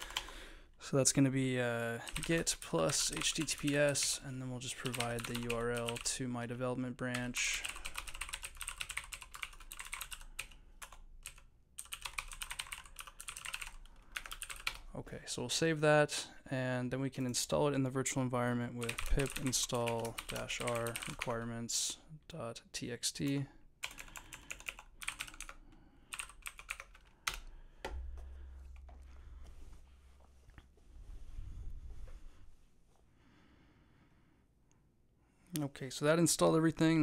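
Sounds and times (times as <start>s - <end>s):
rapid typing on keyboard: 0.0s - 0.4s, 2.0s - 6.2s, 7.0s - 14.9s, 18.8s - 21.4s, 23.8s - 27.5s
low steady hum: 27.4s - 32.8s.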